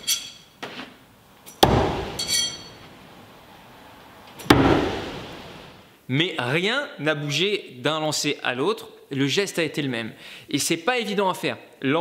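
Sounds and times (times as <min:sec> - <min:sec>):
metallic clink of steel: 0:00.0 - 0:00.5, 0:01.5 - 0:02.8.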